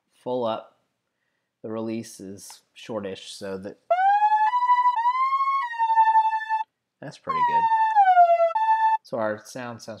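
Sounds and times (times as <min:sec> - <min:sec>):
synthesizer lead gliding notes: 0:03.9 - 0:06.6, 0:07.3 - 0:09.0.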